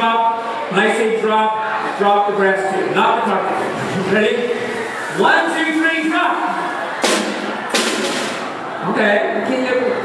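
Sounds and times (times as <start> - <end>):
snare drum hits: 7.0 - 8.6.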